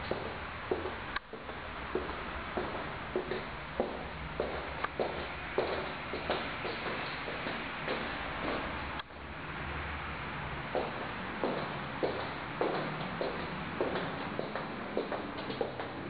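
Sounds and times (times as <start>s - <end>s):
footsteps on wooden floor: 0.0s - 9.0s, 10.7s - 16.0s.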